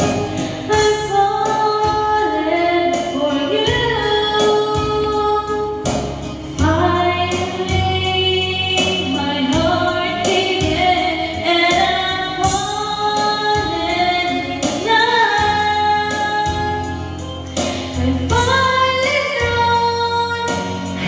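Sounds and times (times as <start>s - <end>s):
backing track with steady beat: 0.0s - 21.0s
woman singing into microphone: 0.0s - 21.0s.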